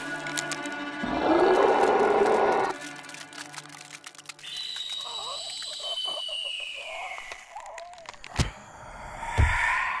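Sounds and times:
quick run of clicks: 0:02.7 - 0:06.1.

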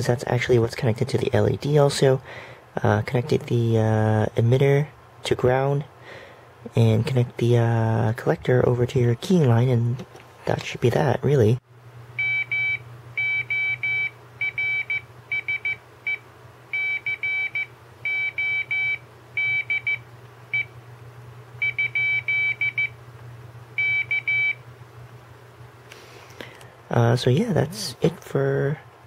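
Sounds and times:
steady low hum: 0:00.0 - 0:29.0
morse code beeps: 0:12.2 - 0:20.7, 0:21.6 - 0:23.0, 0:23.8 - 0:24.6.

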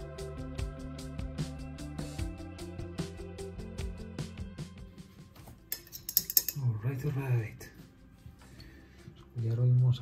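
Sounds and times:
light metallic clinks and clicks: 0:05.7 - 0:06.7.

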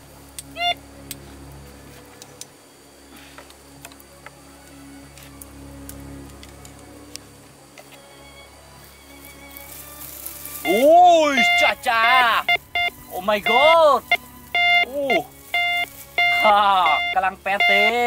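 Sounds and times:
faint steady tones: 0:00.0 - 0:18.0
metal detector beep: 0:10.6 - 0:18.0.

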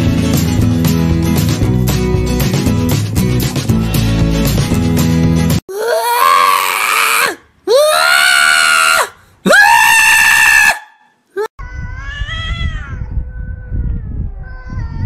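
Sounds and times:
low background rumble: 0:11.6 - 0:15.0.

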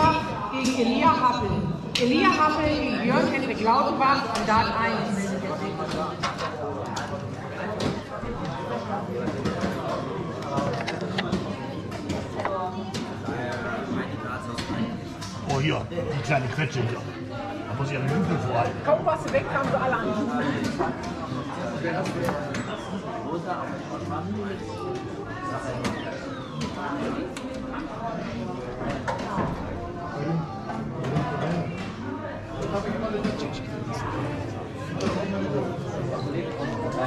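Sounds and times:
babble of many voices: 0:00.0 - 0:37.0
people talking in a hall: 0:00.0 - 0:37.0.

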